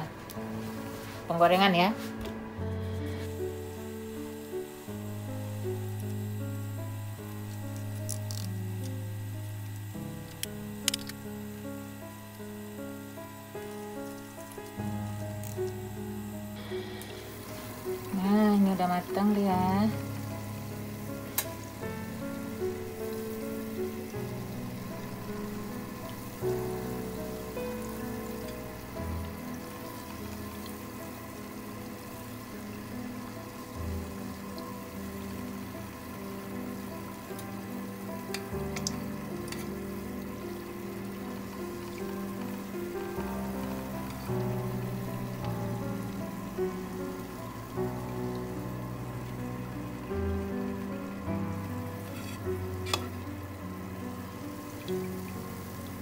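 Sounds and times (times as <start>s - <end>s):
background music: 0.0s - 56.0s
hot oil sizzling: 0.0s - 56.0s.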